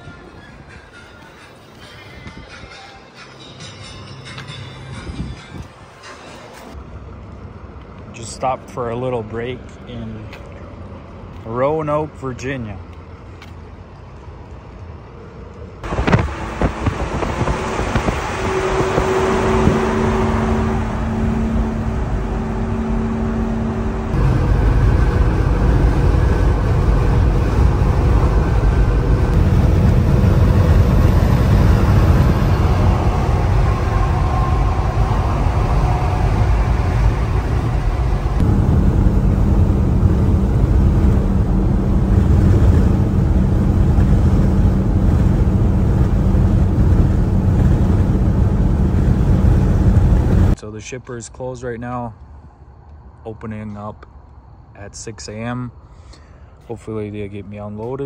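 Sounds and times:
road and wind noise: 0.0s - 58.0s
truck engine drone: 0.0s - 58.0s.

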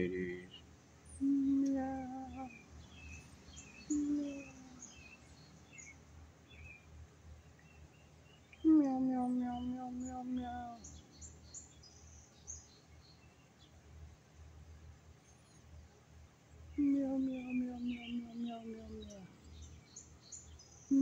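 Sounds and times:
man humming: 0.0s - 0.5s
small birds chirping: 0.0s - 21.0s.

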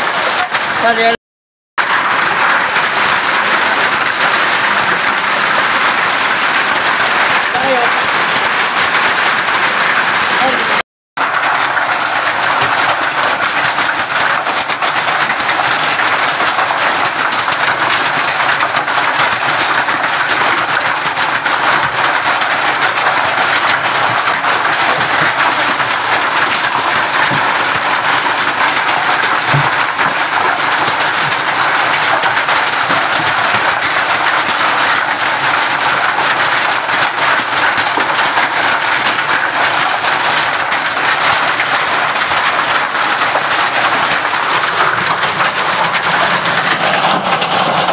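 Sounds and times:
hail and rain on metal roof: 0.0s - 1.2s, 1.8s - 47.9s.

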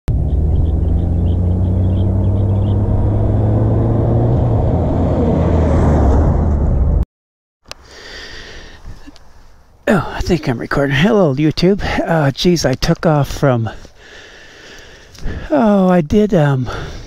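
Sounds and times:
motorcycle engine approaching: 0.1s - 6.6s.

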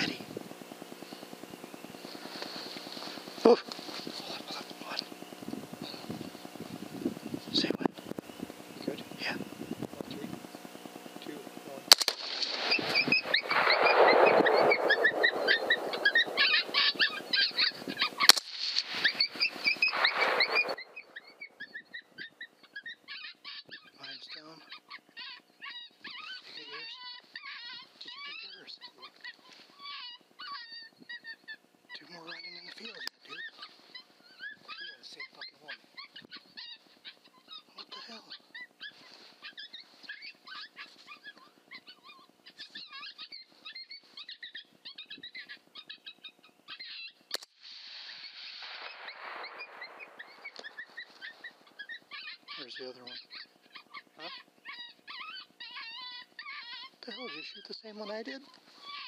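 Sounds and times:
coyotes yipping and howling: 0.0s - 59.0s
suppressed rifle shots: 11.9s - 21.4s, 47.4s - 51.8s.

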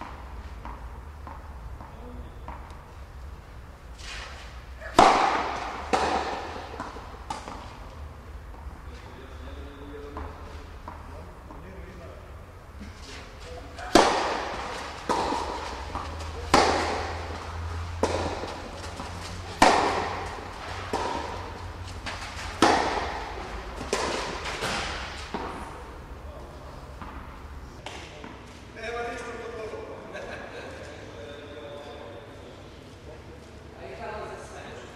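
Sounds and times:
tennis ball bouncing on court: 0.0s - 2.8s, 4.8s - 8.8s, 10.0s - 11.7s, 13.8s - 26.0s, 26.8s - 28.4s
tennis ball struck by rackets: 0.0s - 2.8s, 4.0s - 8.8s, 13.8s - 25.9s, 26.8s - 28.1s.

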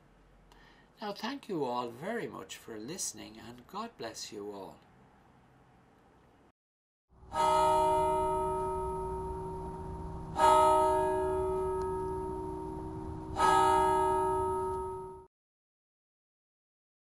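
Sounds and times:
bell ringing: 7.3s - 15.3s.

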